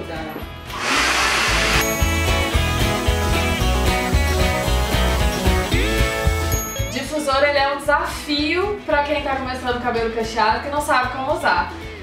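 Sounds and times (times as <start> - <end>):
hair dryer blowing: 0.7 - 5.0
music with bass beat: 1.8 - 6.8.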